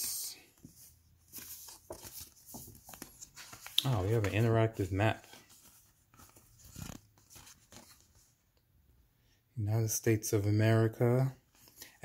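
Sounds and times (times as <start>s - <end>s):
stiff paper rustling: 0.6s - 8.2s.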